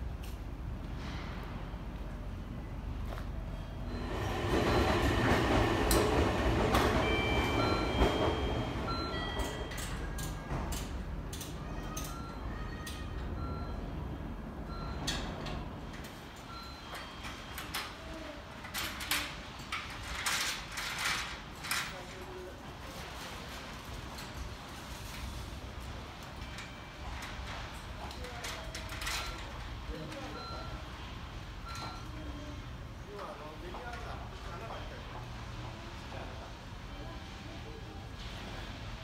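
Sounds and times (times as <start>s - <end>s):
low rumble of traffic or machinery: 0.0s - 39.0s
electronic warning beeps: 6.7s - 10.3s, 11.9s - 15.6s, 16.4s - 17.8s, 28.4s - 31.0s, 31.6s - 32.5s.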